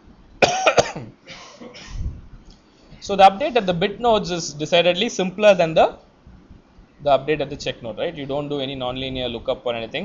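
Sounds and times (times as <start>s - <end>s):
man coughing: 0.4s - 2.1s.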